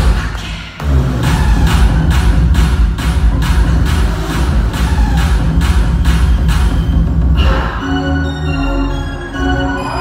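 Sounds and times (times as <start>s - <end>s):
live electropop music with bass beat: 0.0s - 10.0s.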